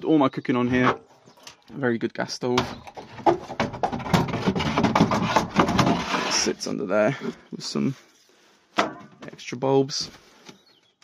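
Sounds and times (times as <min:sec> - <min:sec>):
rubbing and rustling: 0:03.0 - 0:07.4.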